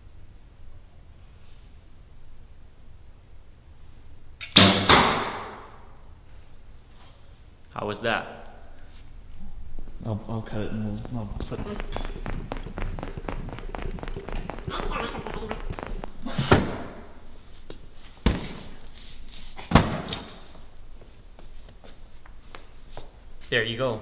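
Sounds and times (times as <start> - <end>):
footsteps on concrete: 10.9 - 16.1
loud thumps: 11.1 - 16.1.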